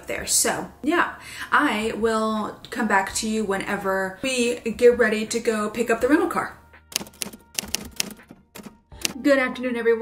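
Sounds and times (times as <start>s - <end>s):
typewriter key clacks: 7.0s - 9.2s.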